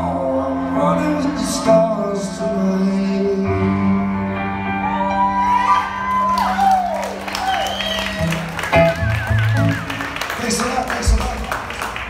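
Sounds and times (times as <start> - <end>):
audience cheering and whooping: 4.6 - 11.0
scattered applause: 5.2 - 12.0
wavering whistle: 7.3 - 10.1.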